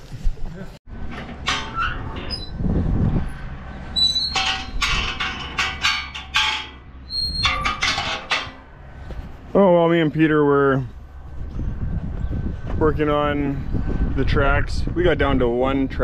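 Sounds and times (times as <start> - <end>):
gate and door clanking and scraping: 0.9 - 9.1
high squeaks: 1.4 - 2.6, 3.9 - 8.7.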